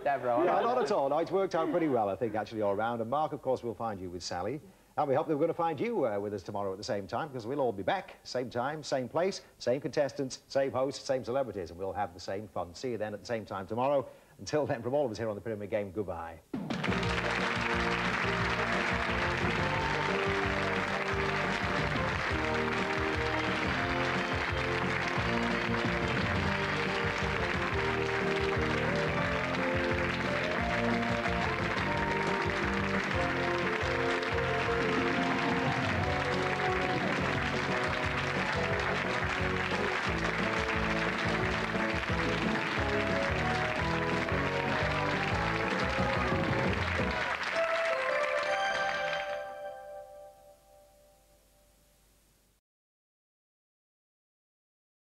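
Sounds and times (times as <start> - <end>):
audience applause: 16.6 - 49.6
game show theme music: 16.6 - 50.6.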